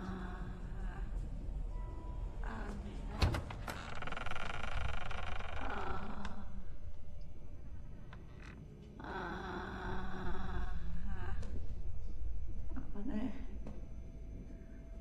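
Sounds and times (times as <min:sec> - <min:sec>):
low background rumble: 0:00.0 - 0:15.0.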